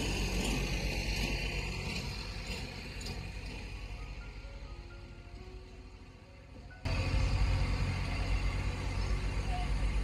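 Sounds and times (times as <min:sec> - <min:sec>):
heavy low outdoor rumble: 0:00.0 - 0:10.0
quiet background music: 0:03.0 - 0:10.0.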